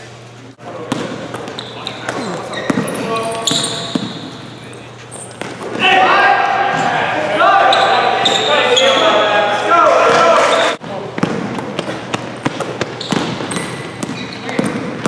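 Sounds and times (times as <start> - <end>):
basketball bouncing: 0.8 - 4.3, 10.8 - 15.0
sneakers squeaking on court: 0.8 - 5.8, 7.6 - 9.3, 10.1 - 15.0.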